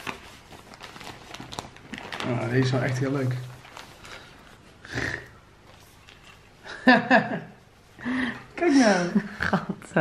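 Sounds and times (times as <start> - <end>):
plastic packaging crinkling: 0.0 - 4.7.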